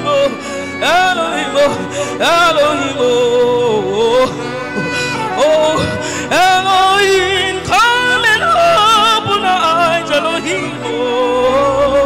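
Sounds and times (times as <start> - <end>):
person singing over pa: 0.0 - 12.0.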